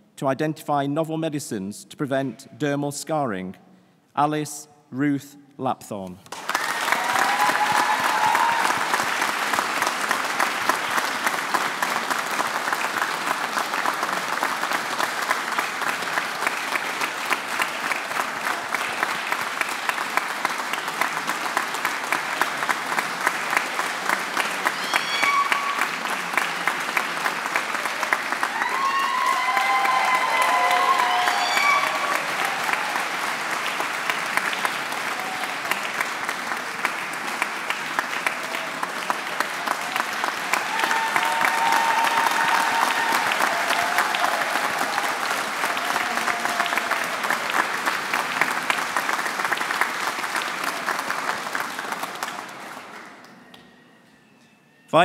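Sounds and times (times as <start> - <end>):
audience applauding: 6.3 - 53.6.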